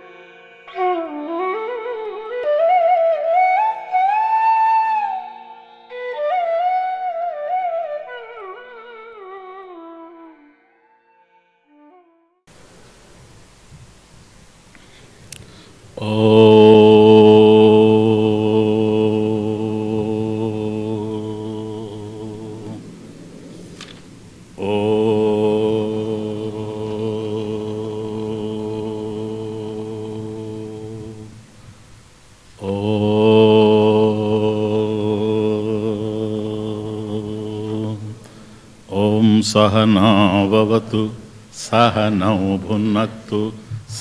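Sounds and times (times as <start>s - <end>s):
man chanting om: 0.0s - 8.1s, 15.8s - 31.6s, 32.5s - 44.0s.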